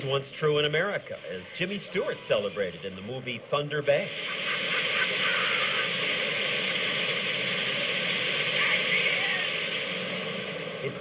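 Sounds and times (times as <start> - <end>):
oil gushing with rushing hiss: 0.0 - 11.0.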